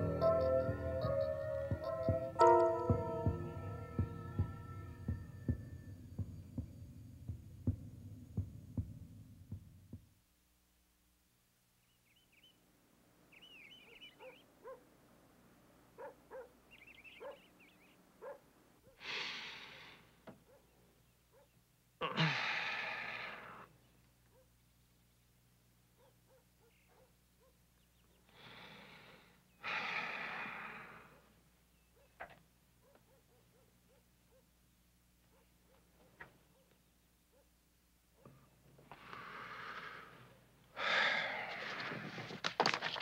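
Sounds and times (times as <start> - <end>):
low hum: 0.0 - 10.1
small birds twittering: 11.8 - 12.6, 13.3 - 14.8, 16.3 - 18.4, 27.7 - 28.4
distant dog barking: 13.9 - 14.9, 15.9 - 17.6, 18.2 - 19.0, 20.4 - 21.6, 24.3 - 24.6, 25.9 - 27.7, 31.1 - 34.6, 35.2 - 38.5.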